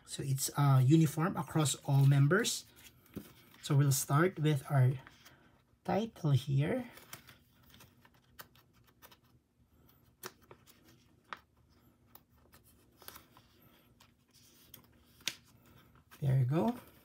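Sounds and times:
rustling of plastic sleeves: 0:06.4 - 0:17.0
cards clicking into plastic sleeves: 0:10.1 - 0:11.5.

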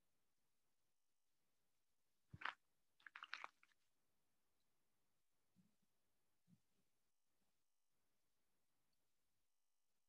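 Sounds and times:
faint crackle: 0:02.3 - 0:03.8.

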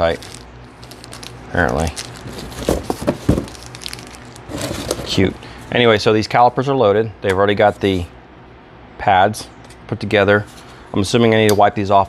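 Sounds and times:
plastic packet crinkling: 0:00.0 - 0:05.3.

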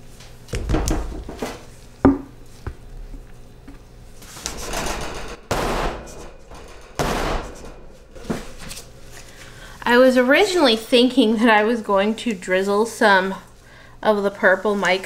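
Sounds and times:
wooden mold knocking on steel: 0:02.1 - 0:02.8.

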